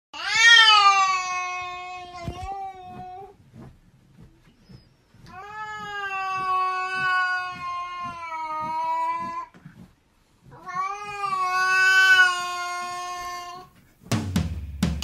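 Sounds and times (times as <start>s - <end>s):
cat yowling: 10.5s - 13.7s.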